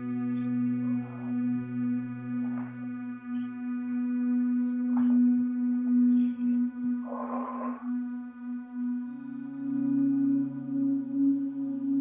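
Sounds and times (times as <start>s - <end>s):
low steady drone: 0.0s - 12.0s.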